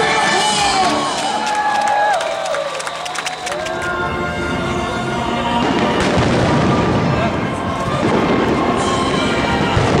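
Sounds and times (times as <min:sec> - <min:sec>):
fireworks bangs and crackling: 0:05.4 - 0:10.0.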